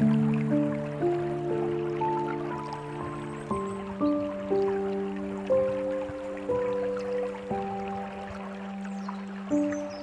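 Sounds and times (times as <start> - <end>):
dripping trickling water: 0.0 - 10.0
slow gentle piano music: 0.0 - 10.0.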